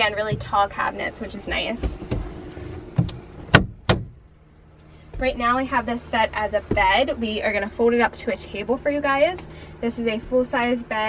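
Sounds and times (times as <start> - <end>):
wooden cabinet doors knocking shut: 3.0 - 4.2.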